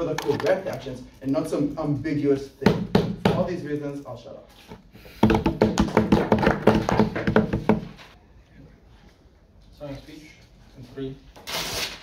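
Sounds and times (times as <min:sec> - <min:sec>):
hands knocking on tabletops: 0:05.1 - 0:08.0.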